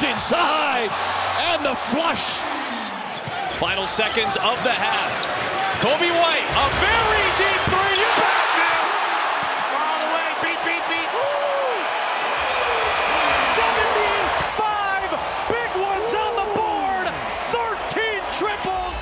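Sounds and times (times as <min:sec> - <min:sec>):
crowd noise: 0:00.0 - 0:19.0.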